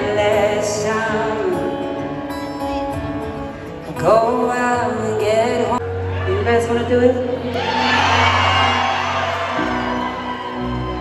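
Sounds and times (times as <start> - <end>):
audience cheering and whooping: 7.5 - 11.0.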